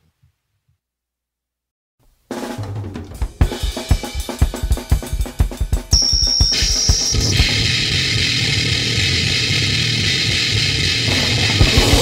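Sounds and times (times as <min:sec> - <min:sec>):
distorted guitar chord ringing: 0:05.9 - 0:12.0.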